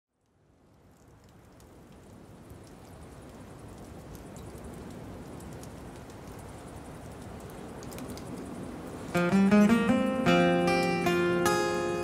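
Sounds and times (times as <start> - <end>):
rain-like ambient noise: 0.1 - 12.0
ticks and crackles: 0.1 - 12.0.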